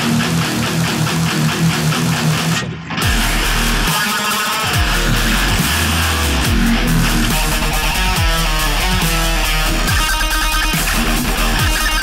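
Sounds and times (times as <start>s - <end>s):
distorted electric guitar riff: 0.0s - 12.0s
dubstep backing track: 3.0s - 12.0s.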